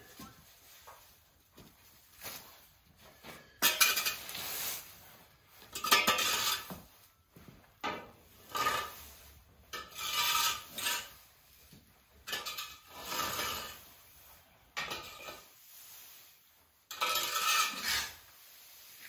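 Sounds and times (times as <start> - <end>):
rake scraping dry hay: 0.0 - 7.2, 7.9 - 19.0.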